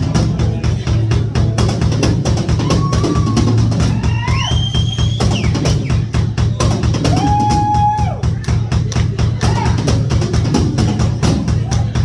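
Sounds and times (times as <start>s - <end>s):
drum kit beat: 0.0s - 12.0s
electric bass: 0.0s - 12.0s.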